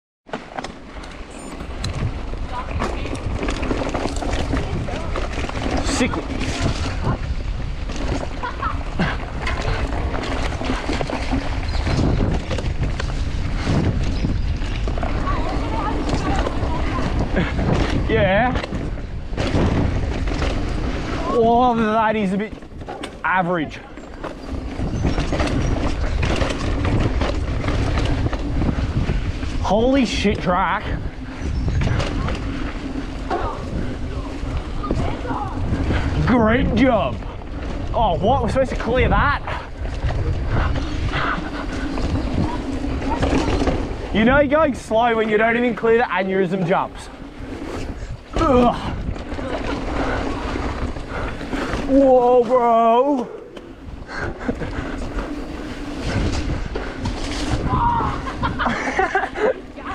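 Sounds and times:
bike clicks and rattles: 0:00.3 - 0:59.9
bike tyres crunching on gravel: 0:00.3 - 0:59.9
wind rumbling on microphone: 0:00.8 - 0:59.9.

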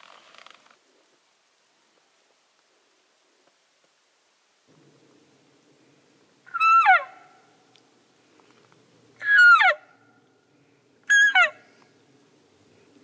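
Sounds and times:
elk call mews: 0:06.5 - 0:07.5, 0:09.2 - 0:10.0, 0:11.1 - 0:11.7.

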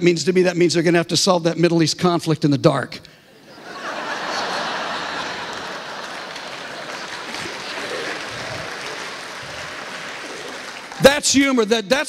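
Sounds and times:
congregation laughing: 0:03.3 - 0:11.4
congregation applauding: 0:03.7 - 0:11.7.

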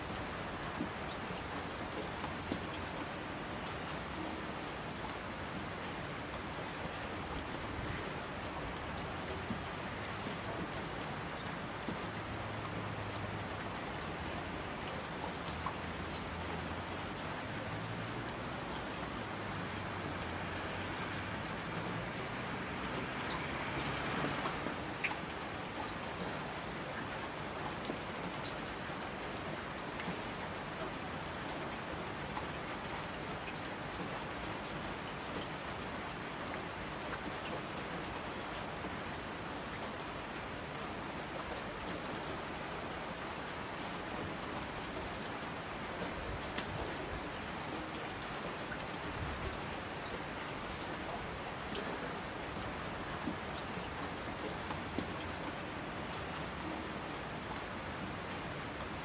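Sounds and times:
steady rain patter: 0:00.0 - 0:59.0
sharp raindrop clicks: 0:53.2 - 0:55.6.

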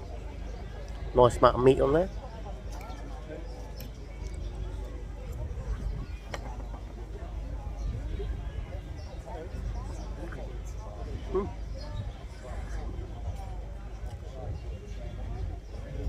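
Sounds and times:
faint chatter of voices: 0:00.0 - 0:16.0.

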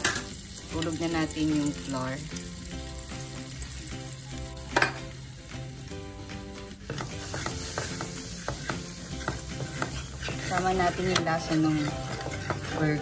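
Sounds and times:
butter sizzling in a frying pan: 0:00.0 - 0:13.0
spoon scraping and tapping pan: 0:04.7 - 0:05.1, 0:06.9 - 0:13.0.

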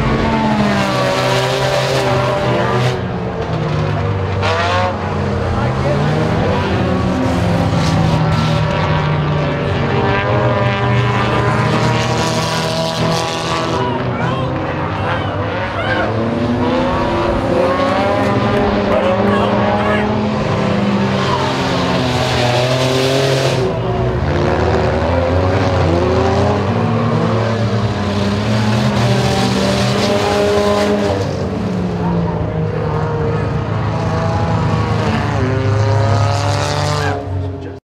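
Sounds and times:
race car engines revving: 0:00.0 - 0:37.8.

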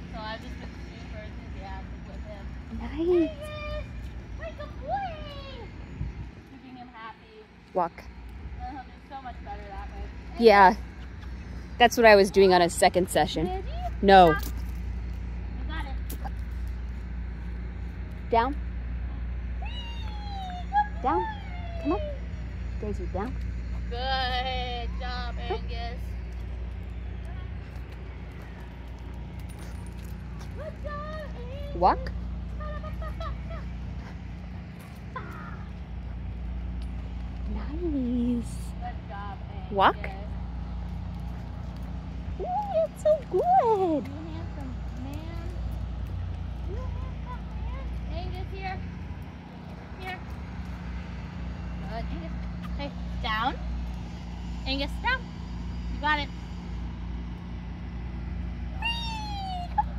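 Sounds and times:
steady low rumble: 0:00.0 - 0:59.9.

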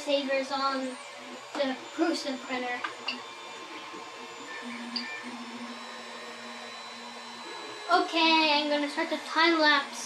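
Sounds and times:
stepper motors humming: 0:00.0 - 0:10.0.

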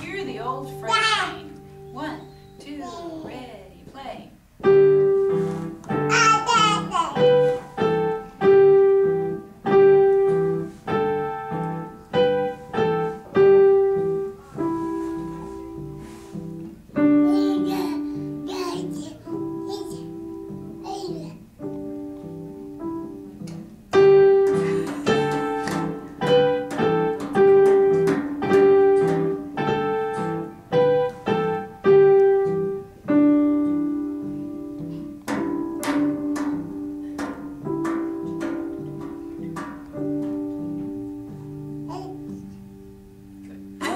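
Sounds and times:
digital piano simple tune: 0:00.0 - 0:43.9.

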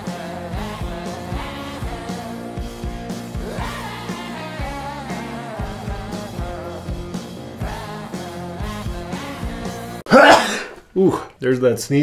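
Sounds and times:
rock music: 0:00.0 - 0:10.1
man sneezing: 0:10.1 - 0:11.3.

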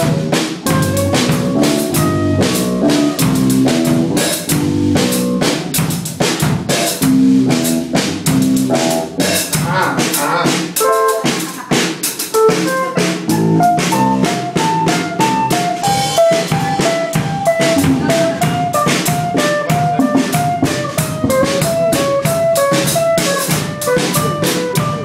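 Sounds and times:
electric guitar riffs: 0:00.0 - 0:05.4, 0:15.9 - 0:25.0
drum kit struck hard: 0:00.0 - 0:25.0.

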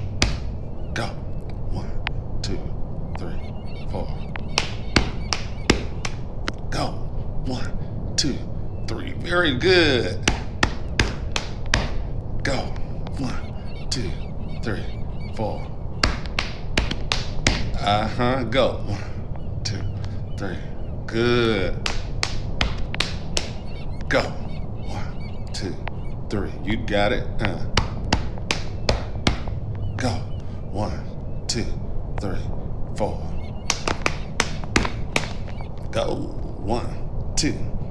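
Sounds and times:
body percussion taps: 0:00.0 - 0:01.1, 0:03.1 - 0:06.6, 0:10.0 - 0:18.1, 0:21.7 - 0:26.1, 0:27.4 - 0:30.5, 0:33.3 - 0:35.9.

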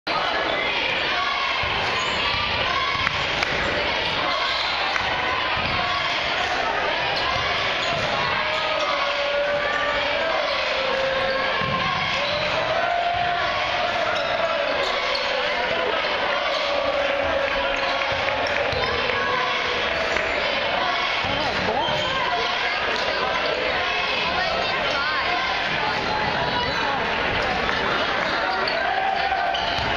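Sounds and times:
chatter and shouts of people: 0:00.0 - 0:29.9.

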